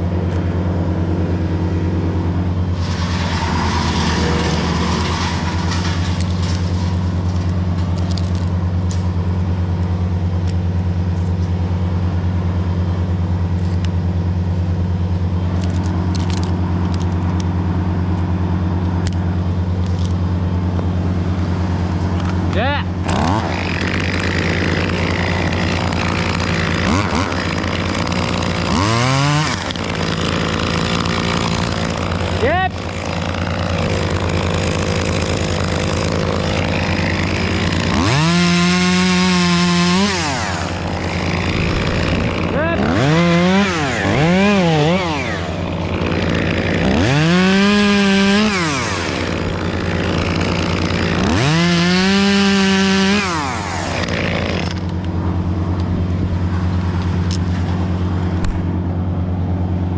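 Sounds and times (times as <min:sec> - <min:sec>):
chainsaw idling and revving: 0:00.0 - 0:59.9.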